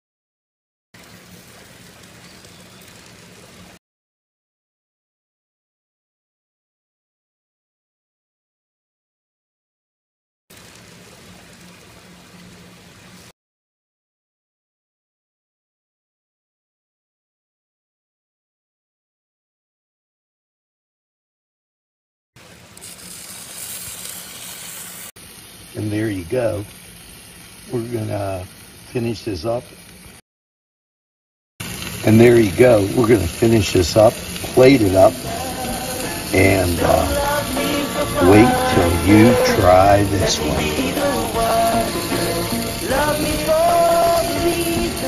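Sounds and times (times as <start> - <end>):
food sizzling on a grill: 1.0 - 3.8, 10.5 - 13.3, 22.4 - 30.2, 31.6 - 45.0.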